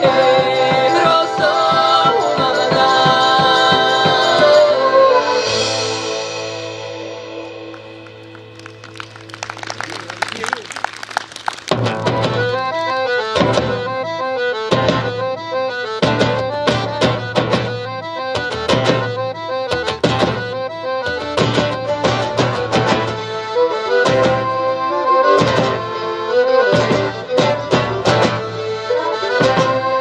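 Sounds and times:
accordion: 0.0 - 30.0
folk band playing: 0.0 - 30.0
acoustic guitars strumming: 11.7 - 24.6.

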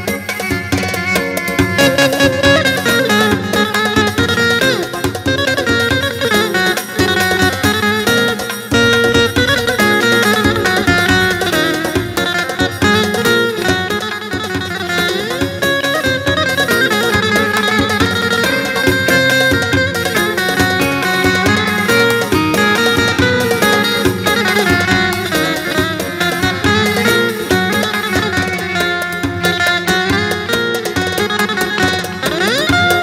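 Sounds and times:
electric saz plucked runs: 0.0 - 33.0
keyboard backing: 0.0 - 33.0.

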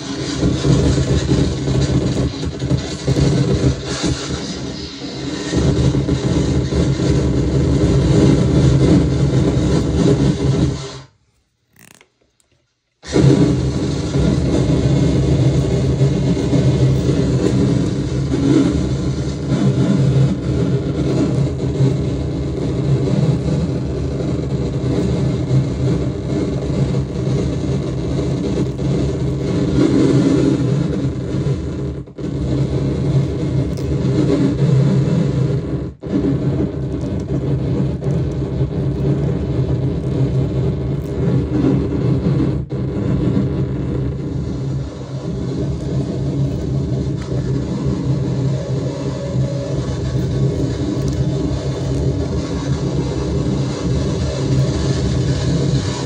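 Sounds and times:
distorted harsh noise: 0.0 - 56.0.

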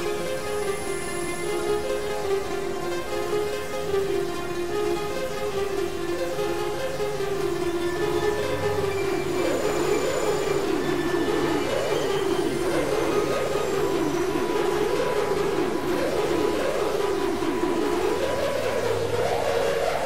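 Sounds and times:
faint high sustained tones: 0.0 - 20.0
synthesizer pitch glides: 0.0 - 20.0.

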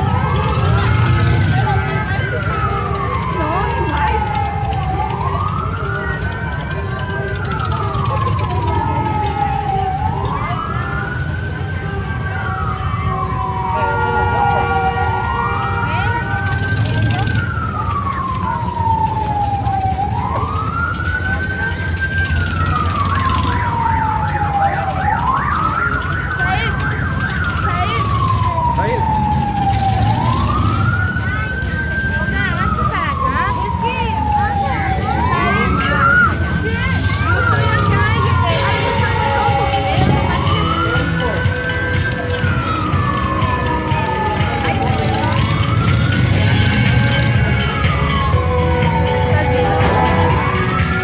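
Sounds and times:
siren wailing: 0.0 - 51.0.

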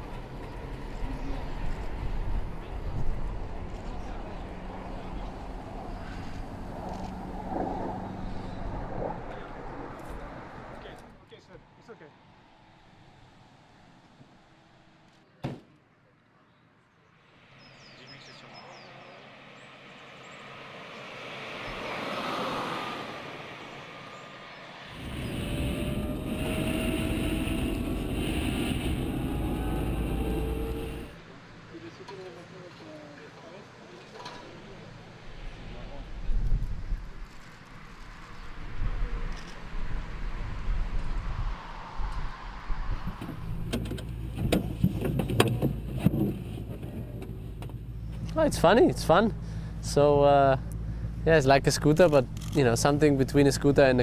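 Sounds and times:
electric car passing: 19.2 - 31.2
faint gliding whine: 24.9 - 31.2
tyre and wind noise rush: 24.9 - 31.2, 36.2 - 47.8.

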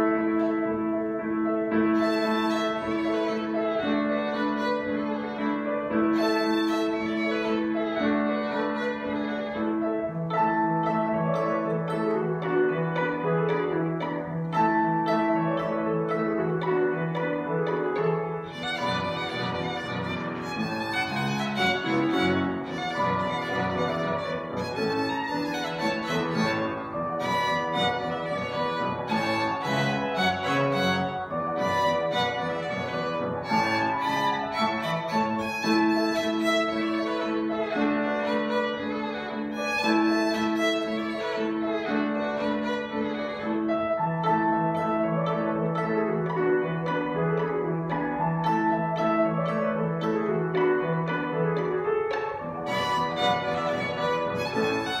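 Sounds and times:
piano accompaniment: 0.0 - 55.0
solo violin: 0.0 - 55.0.

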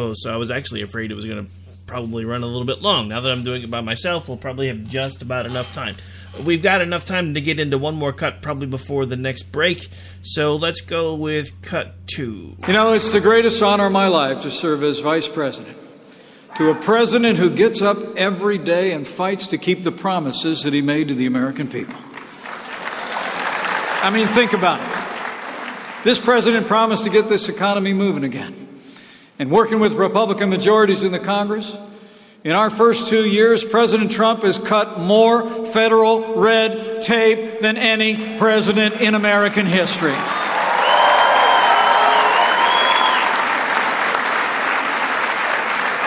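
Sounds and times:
audience applauding: 21.9 - 26.7, 40.0 - 46.0.

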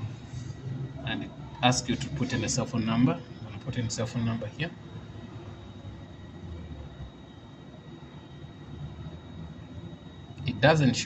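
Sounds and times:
faint high-pitched whine: 0.0 - 11.0
low background rumble: 0.0 - 11.0.

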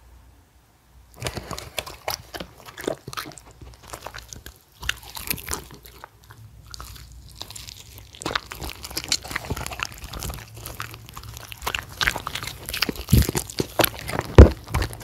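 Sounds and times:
dogs chewing and crunching: 1.1 - 15.0
lip smacks: 1.2 - 15.0.

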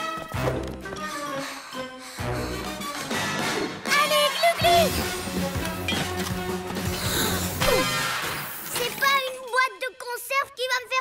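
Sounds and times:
cartoon action music with bass: 2.2 - 8.4.

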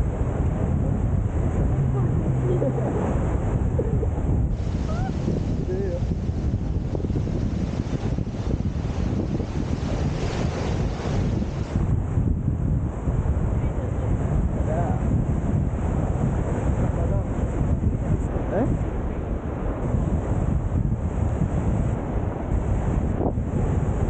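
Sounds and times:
surf washing up beach: 0.0 - 24.0
wind buffeting microphone: 0.0 - 24.0.

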